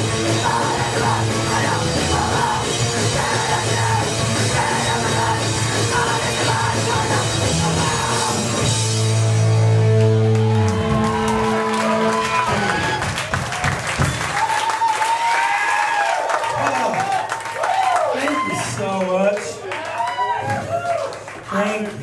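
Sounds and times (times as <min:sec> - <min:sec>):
crowd cheering and clapping: 0:00.0 - 0:22.0
crowd shouts and whoops: 0:10.0 - 0:18.9, 0:19.6 - 0:21.2.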